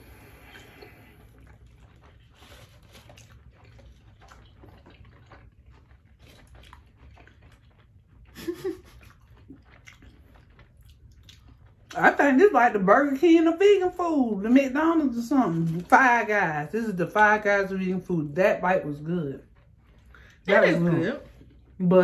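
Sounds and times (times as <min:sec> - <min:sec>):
wet chewing: 0:00.0 - 0:22.0.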